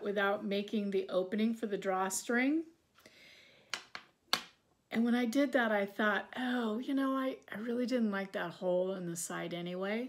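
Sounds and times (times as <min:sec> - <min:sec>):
soft breath: 0:02.9 - 0:03.8.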